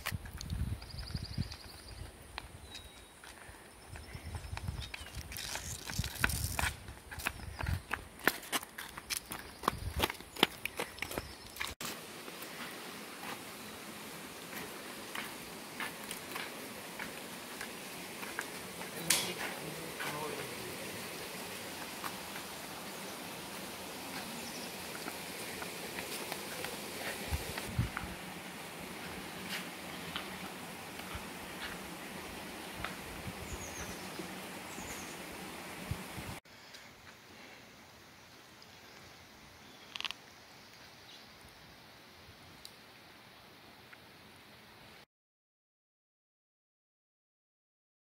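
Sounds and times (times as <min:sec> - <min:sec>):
outdoor background noise: 0:00.0 - 0:45.1
footsteps on pavement: 0:01.0 - 0:13.4, 0:14.5 - 0:20.5, 0:21.6 - 0:22.7, 0:23.9 - 0:28.1.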